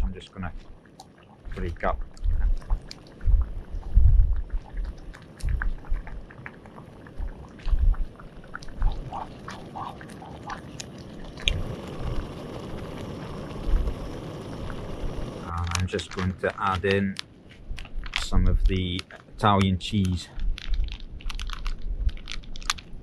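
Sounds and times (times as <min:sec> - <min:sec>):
risotto simmering with wet pops: 0:00.5 - 0:22.9
low thumps: 0:01.5 - 0:06.3
gas burner hiss: 0:08.6 - 0:17.2.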